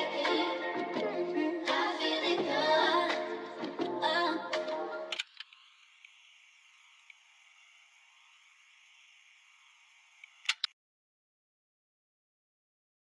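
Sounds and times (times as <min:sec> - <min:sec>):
music track: 0:00.0 - 0:05.2
faint thin hiss: 0:00.0 - 0:10.7
sharp clicks: 0:10.2 - 0:10.8.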